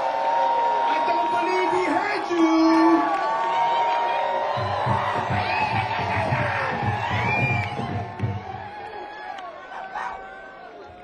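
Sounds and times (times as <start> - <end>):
crowd cheering and whooping: 0.0 - 11.0.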